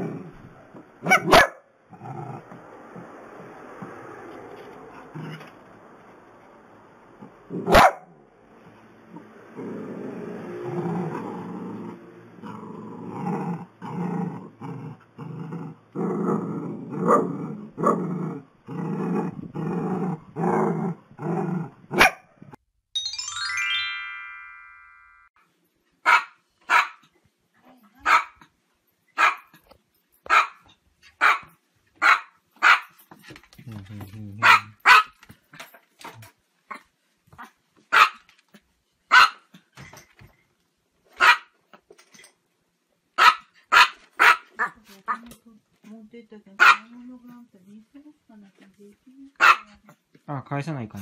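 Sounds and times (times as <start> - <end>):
small dog yapping: 26.1 - 27.0, 30.3 - 30.6, 31.2 - 32.9, 37.4 - 38.2, 41.2 - 41.5, 43.2 - 45.2, 49.4 - 49.7.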